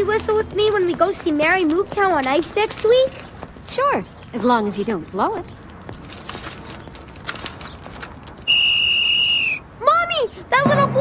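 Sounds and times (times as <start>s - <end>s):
high-pitched whistle blast: 8.5s - 9.6s.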